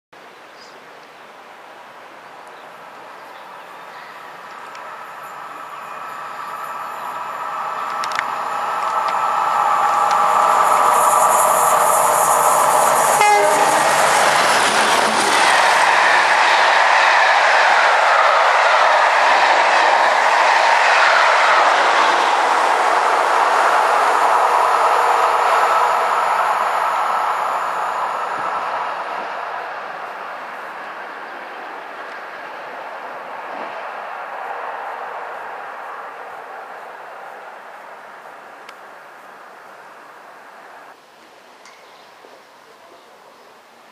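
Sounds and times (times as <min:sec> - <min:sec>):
diesel locomotive engines: 0:01.3 - 0:41.0.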